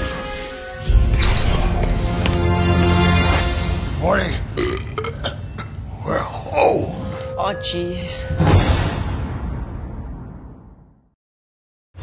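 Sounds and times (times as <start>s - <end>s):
man belching: 4.5s - 7.0s.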